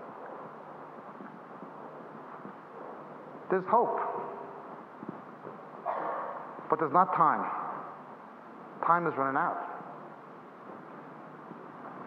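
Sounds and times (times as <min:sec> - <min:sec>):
low room noise: 0:00.0 - 0:12.0
man's voice reverberating: 0:03.5 - 0:04.6.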